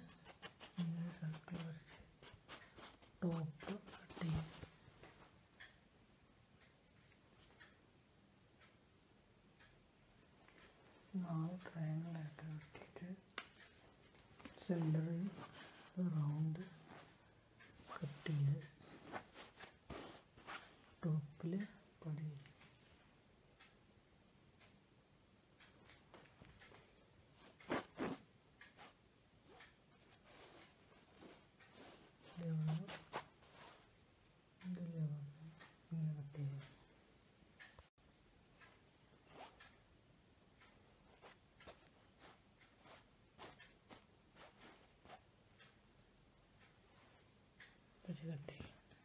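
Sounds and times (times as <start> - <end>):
cloth rustling: 13.6 - 16.0, 16.6 - 21.0, 27.4 - 28.2, 28.8 - 33.9, 39.2 - 39.6, 41.1 - 45.2.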